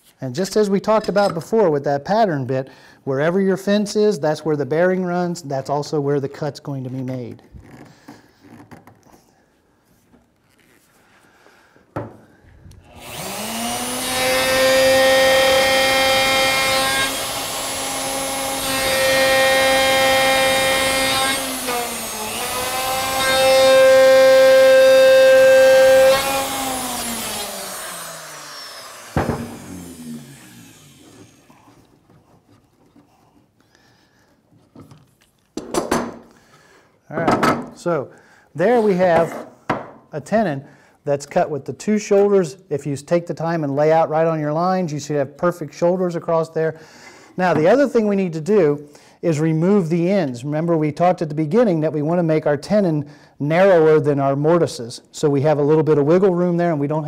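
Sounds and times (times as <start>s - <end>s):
router high whine: 12.9s - 31.5s
knock: 29.2s - 29.6s, 39.7s - 40.0s.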